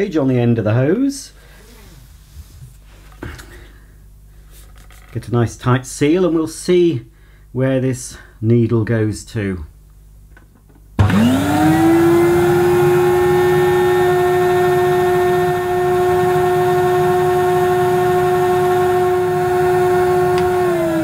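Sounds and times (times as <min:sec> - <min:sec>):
vacuum cleaner motor whining: 0:11.0 - 0:21.0.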